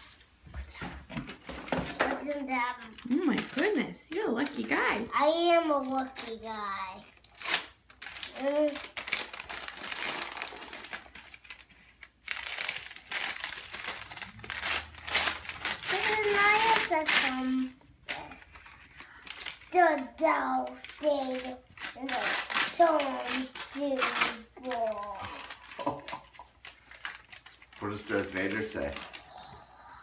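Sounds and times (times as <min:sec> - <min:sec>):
gift wrap crinkling: 0:01.4 - 0:29.6
child's voice: 0:02.0 - 0:03.0, 0:05.0 - 0:07.1, 0:08.3 - 0:09.0, 0:15.8 - 0:18.7, 0:19.7 - 0:25.5.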